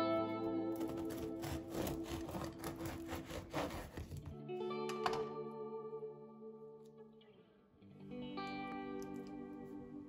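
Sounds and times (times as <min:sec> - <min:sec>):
background music: 0:00.0 - 0:10.0
bread knife sawing crusty roll: 0:00.9 - 0:04.3.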